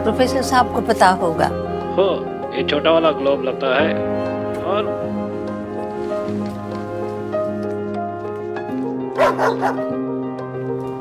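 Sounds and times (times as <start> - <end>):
soft background music: 0.0 - 11.0
dog yipping: 9.2 - 9.9.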